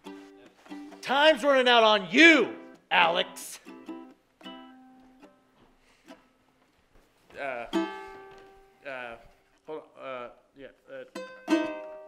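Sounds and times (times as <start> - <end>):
plucked string instrument: 0.0 - 6.4, 7.4 - 8.8, 10.9 - 12.0.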